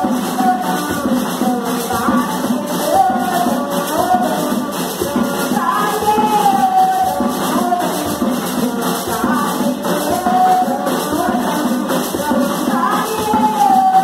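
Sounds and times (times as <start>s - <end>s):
hand-shaken rattles: 0.0s - 14.0s
voices singing a religious chant: 0.0s - 14.0s.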